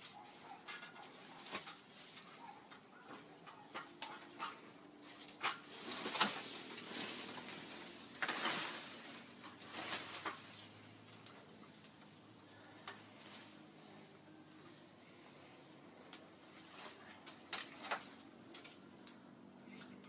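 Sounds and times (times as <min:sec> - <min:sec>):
leaves and vines rustling: 0:00.0 - 0:20.0
twigs snapping: 0:00.7 - 0:13.6, 0:16.0 - 0:20.0.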